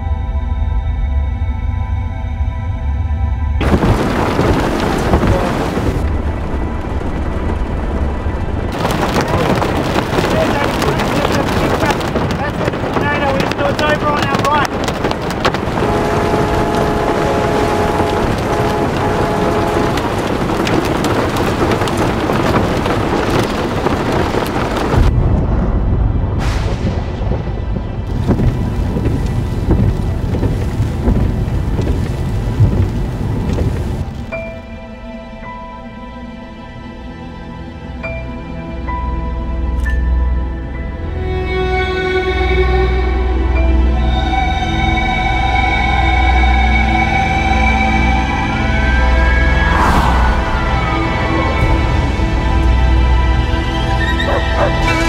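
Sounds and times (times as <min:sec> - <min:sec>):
deep rumble: 0:00.0 - 0:34.6, 0:45.8 - 0:55.0
heavy rain on car: 0:03.6 - 0:25.1, 0:27.3 - 0:34.4
sharp thunder crack: 0:03.6 - 0:34.2, 0:49.4 - 0:52.6.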